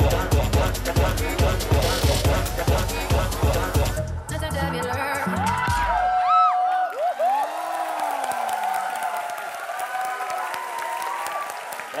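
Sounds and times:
dance music: 0:00.0 - 0:06.5
audience applauding and cheering: 0:05.2 - 0:12.0.

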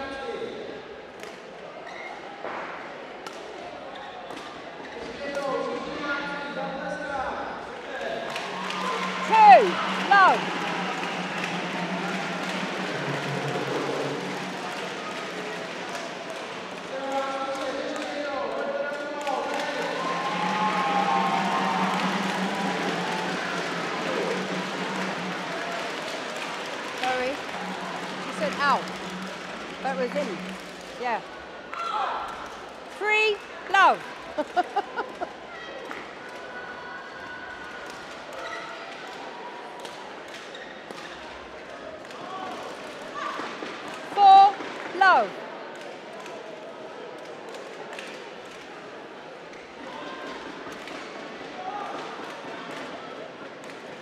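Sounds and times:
murmur of voices: 0:00.0 - 0:54.0
shoes squeaking on court floor: 0:01.8 - 0:02.4.

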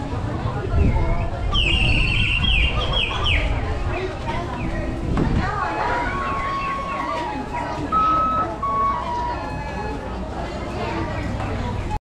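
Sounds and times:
crowd chatter: 0:00.0 - 0:12.0
toy flute held notes: 0:05.8 - 0:10.3.

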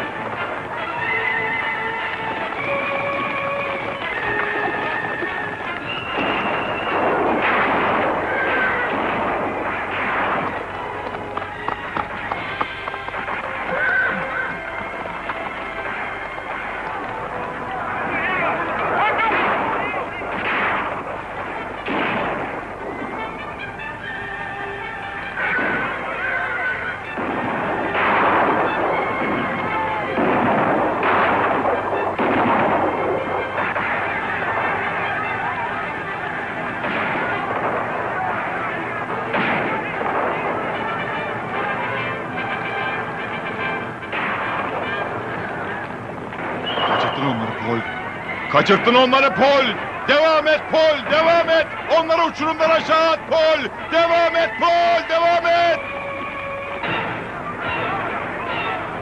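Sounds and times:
orchestral score: 0:00.0 - 0:59.0
rifle shots: 0:06.2 - 0:11.2, 0:18.8 - 0:22.8, 0:27.1 - 0:35.7, 0:36.7 - 0:41.3, 0:43.4 - 0:47.4
people shouting: 0:13.3 - 0:20.4, 0:25.2 - 0:27.0, 0:27.8 - 0:30.5, 0:33.2 - 0:42.2.

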